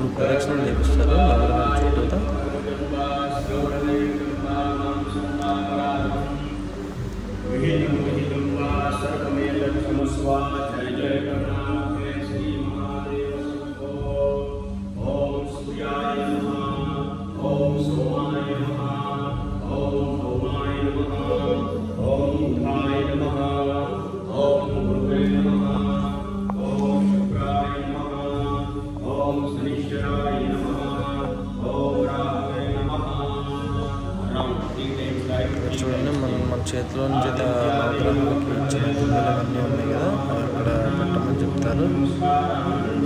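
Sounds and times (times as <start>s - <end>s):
low steady tone: 0.0s - 43.0s
person chanting: 0.0s - 43.0s.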